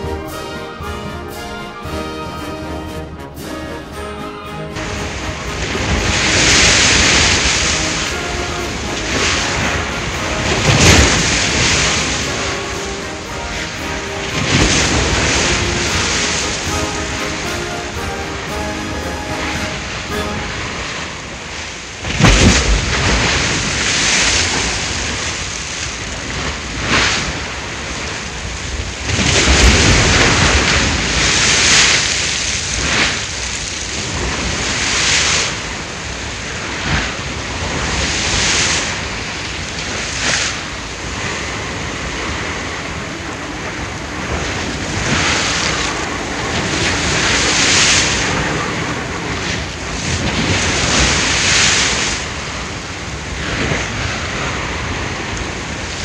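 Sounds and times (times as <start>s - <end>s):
ocean waves washing: 0.0s - 56.0s
wind: 0.0s - 56.0s.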